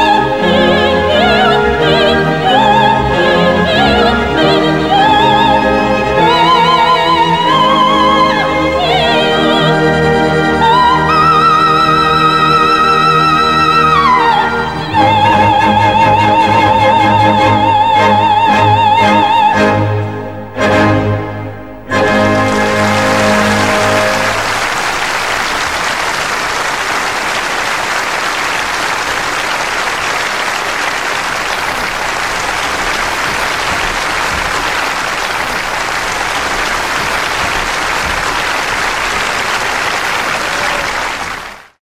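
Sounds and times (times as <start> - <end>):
orchestra final chord: 20.4 - 24.8
audience applauding: 21.8 - 41.8.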